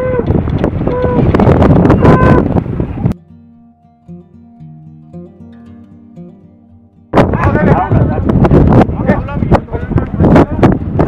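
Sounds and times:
wind: 0.0s - 11.0s
plucked acoustic guitar music: 0.1s - 11.0s.

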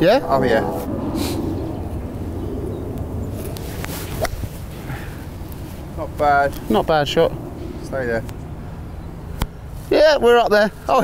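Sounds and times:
outdoor wind: 0.0s - 11.0s.

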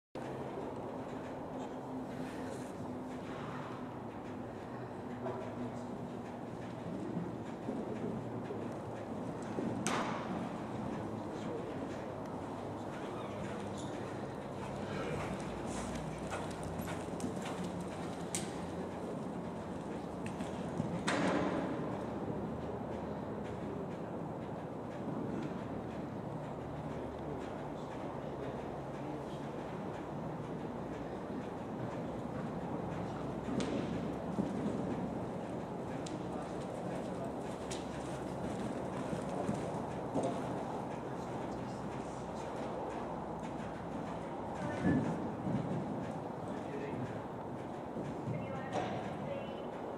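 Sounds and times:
horse hoofbeats on sand: 0.2s - 49.9s
steady low hum: 0.2s - 49.9s
faint voices: 10.6s - 16.7s.

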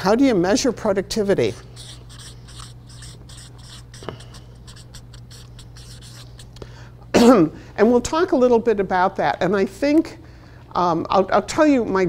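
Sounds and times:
steady low hum: 0.0s - 11.3s
marker writing on paper: 1.6s - 6.6s.

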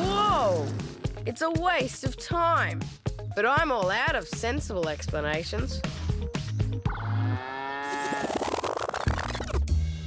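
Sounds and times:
cow mooing: 7.3s - 8.2s.

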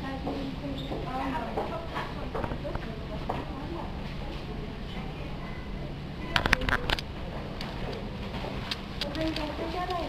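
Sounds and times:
shop background murmur: 0.0s - 10.0s
sharp clicks and clacks: 6.4s - 10.0s.

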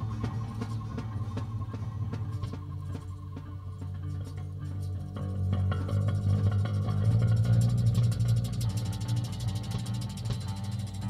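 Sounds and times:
rapid rattling drum ticks: 0.0s - 11.0s
sustained bass notes: 0.0s - 11.0s.

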